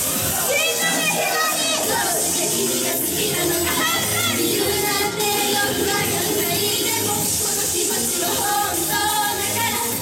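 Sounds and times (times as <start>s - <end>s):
pop backing music: 0.0s - 10.0s.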